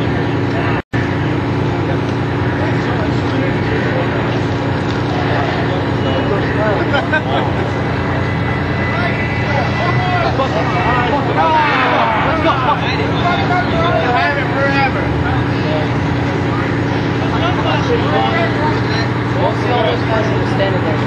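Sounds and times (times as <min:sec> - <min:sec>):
fire engine idling: 0:00.0 - 0:21.0
many people talking: 0:00.0 - 0:21.0.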